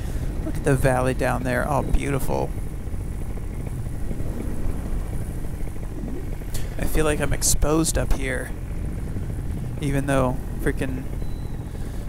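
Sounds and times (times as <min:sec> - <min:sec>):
paramotor engine idling: 0:00.0 - 0:12.0
wind noise on microphone: 0:00.0 - 0:12.0.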